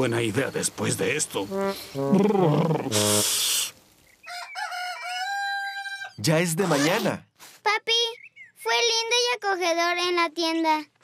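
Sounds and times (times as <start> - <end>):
rain hiss: 0.0 - 4.6
rooster crowing: 4.2 - 6.2.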